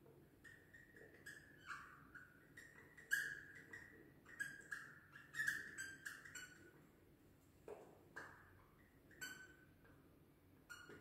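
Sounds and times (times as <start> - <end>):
marker squeaking on whiteboard: 0.4 - 6.8, 10.6 - 11.0.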